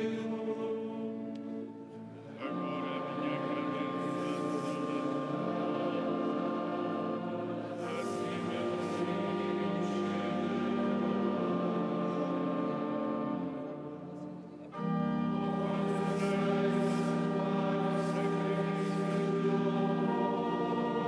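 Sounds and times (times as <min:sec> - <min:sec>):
choir singing chant: 0:00.0 - 0:21.0.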